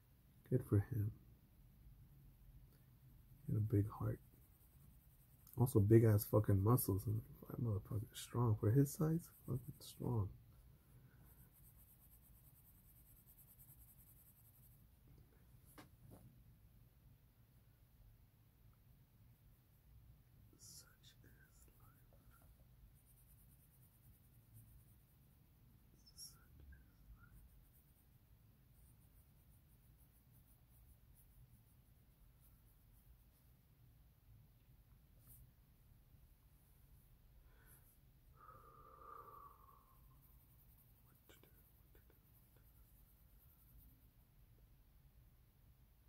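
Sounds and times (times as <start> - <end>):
pencil scratching on paper: 3.4 - 10.4, 11.0 - 15.0, 20.7 - 33.6
faint whispered murmur: 5.4 - 10.5, 20.5 - 23.2, 25.8 - 27.9, 37.5 - 43.8.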